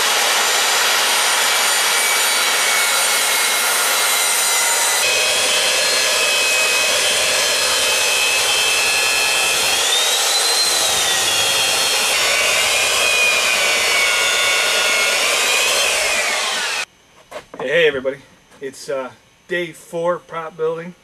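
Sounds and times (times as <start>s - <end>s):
angle grinder whining: 0.0s - 16.9s
electric hand planer whining: 0.0s - 16.9s.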